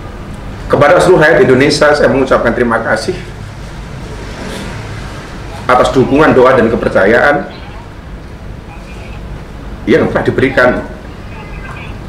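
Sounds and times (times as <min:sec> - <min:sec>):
low background hum and rumble: 0:00.0 - 0:12.0.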